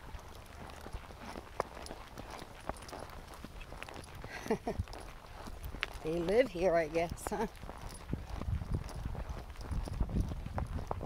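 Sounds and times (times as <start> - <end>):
horse hooves on rocky trail: 0.0 - 11.0.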